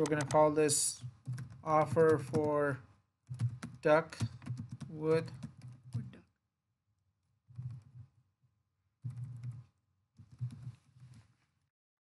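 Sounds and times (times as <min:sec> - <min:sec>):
computer keyboard key taps: 0:00.0 - 0:00.4, 0:01.0 - 0:02.6, 0:03.3 - 0:06.1.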